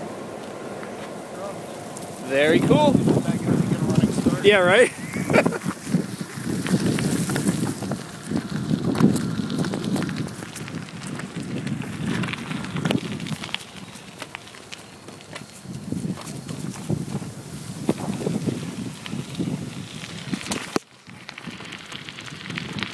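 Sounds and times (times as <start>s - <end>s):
bicycle tyres crunching on gravel: 0.0s - 22.9s
wind rumbling on microphone: 0.0s - 22.9s.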